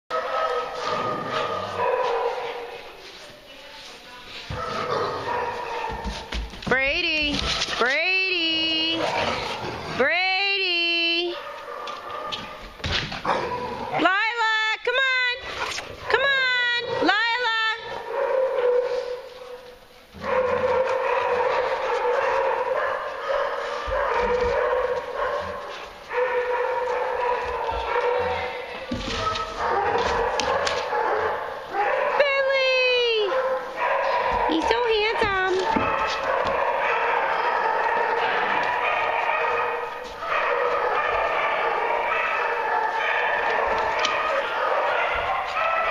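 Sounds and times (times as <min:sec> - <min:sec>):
dogs barking and whining: 0:00.1 - 0:02.9, 0:04.5 - 0:06.3, 0:08.8 - 0:10.1, 0:11.3 - 0:14.2, 0:15.4 - 0:45.9.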